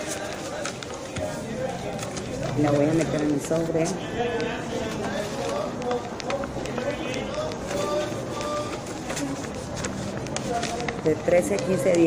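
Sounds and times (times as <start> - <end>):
people conversing: 0.0 - 12.0.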